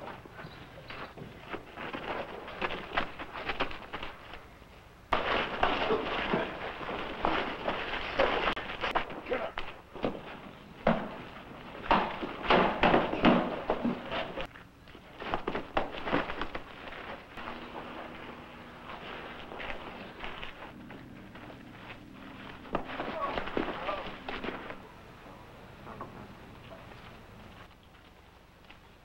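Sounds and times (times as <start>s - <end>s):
scuffling: 0.0s - 25.3s
voices: 7.6s - 9.8s, 17.5s - 27.6s
punches and thuds: 11.8s - 14.1s.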